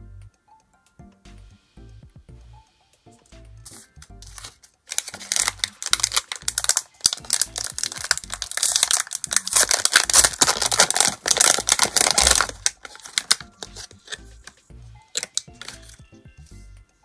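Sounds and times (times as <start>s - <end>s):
plastic wrapper crinkling: 4.2s - 16.0s.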